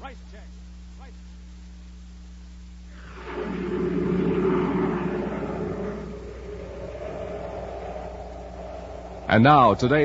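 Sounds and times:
rocket ship rumbling rush: 3.0 - 10.0.

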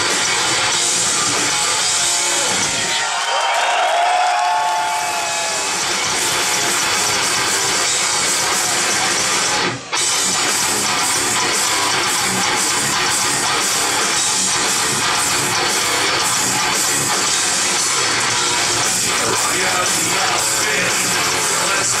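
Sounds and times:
high held guitar line: 0.0 - 3.0, 4.3 - 22.0
live heavy metal band: 0.0 - 22.0.

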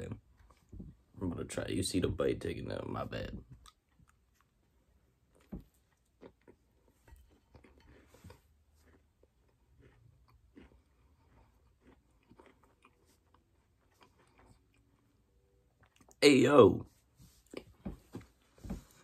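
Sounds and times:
faint chewing: 3.4 - 16.2, 17.3 - 19.0.

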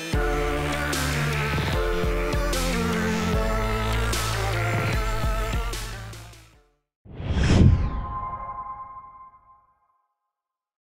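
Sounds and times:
whoosh: 7.1 - 9.7.

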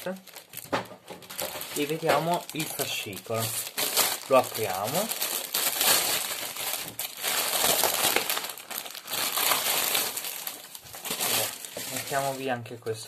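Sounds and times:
plastic wrap crackling: 0.0 - 13.0.

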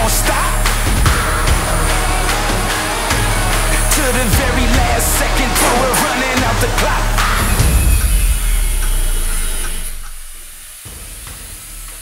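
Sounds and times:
angle grinder cutting sheet metal: 0.0 - 12.0
background music: 0.0 - 12.0.

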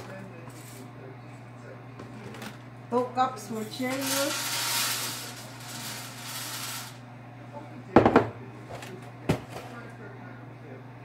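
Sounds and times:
steady low hum: 0.0 - 11.0
cereal pouring onto metal sheet: 3.7 - 7.0.

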